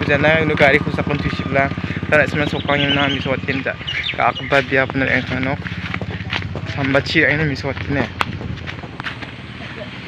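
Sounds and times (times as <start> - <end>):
man talking: 0.0 - 8.2.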